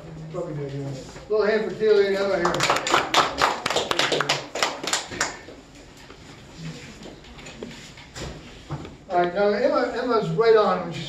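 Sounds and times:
applause: 2.4 - 5.5.

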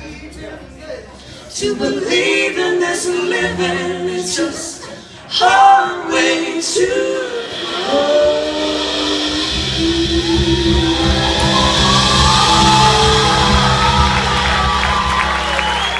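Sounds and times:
a cappella singing: 1.5 - 14.4
folk-rock band playing: 5.3 - 15.9
audience cheering and shouting: 7.6 - 15.9.

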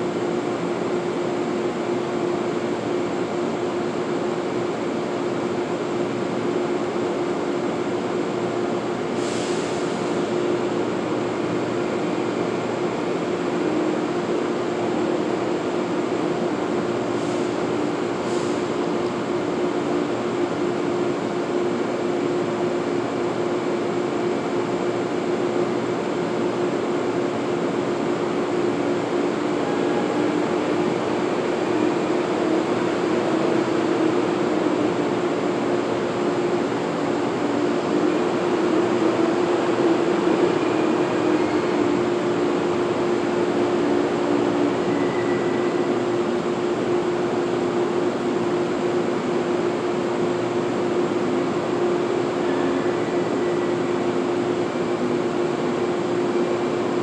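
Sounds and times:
continuous hum: 0.0 - 57.0.

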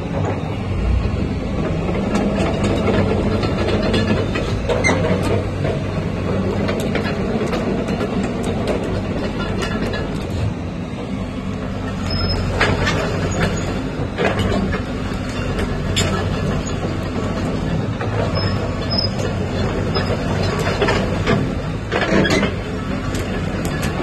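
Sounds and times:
crawler tracks clanking: 0.0 - 24.0
excavator diesel engine running: 0.0 - 24.0.

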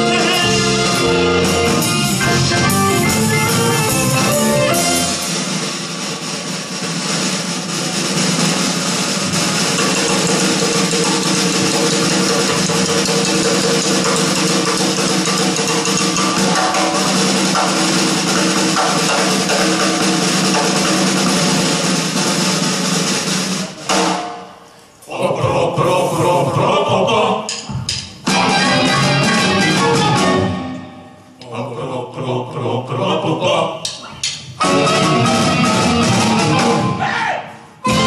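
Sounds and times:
live rock band playing loud: 0.0 - 24.3, 28.1 - 30.8, 34.6 - 37.0
cymbals wash: 4.4 - 25.0.

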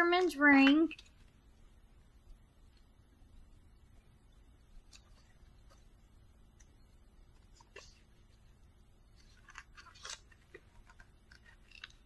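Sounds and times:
paper pages rustling: 7.3 - 8.5, 9.1 - 12.0.

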